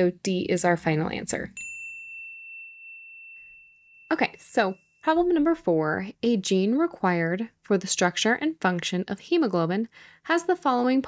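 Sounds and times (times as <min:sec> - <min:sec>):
electronic bell-like ding: 0:01.6 - 0:05.5.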